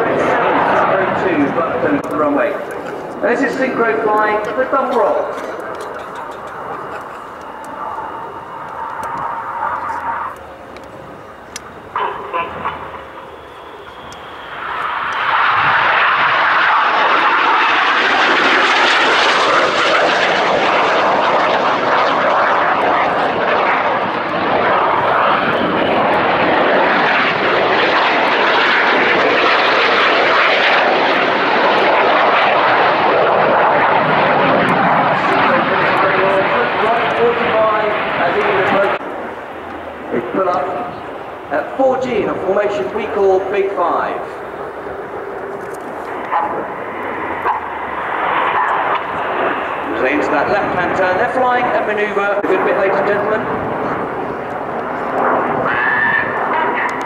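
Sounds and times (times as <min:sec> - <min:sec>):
jet engine roar: 0:00.0 - 0:57.0.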